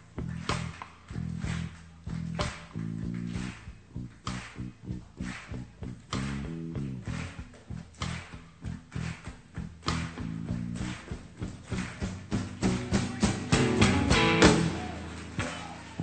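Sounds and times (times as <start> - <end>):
drum kit fills: 0.0 - 16.0
rock band playing: 9.9 - 16.0.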